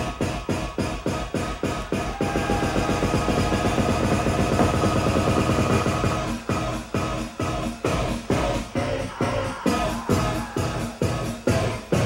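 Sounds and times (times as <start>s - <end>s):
electronic dance music over pa: 0.0s - 12.0s.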